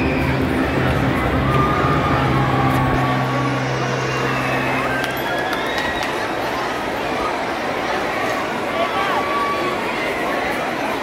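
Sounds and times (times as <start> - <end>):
high whine: 0.0 - 6.7
background noise wash: 0.0 - 11.0.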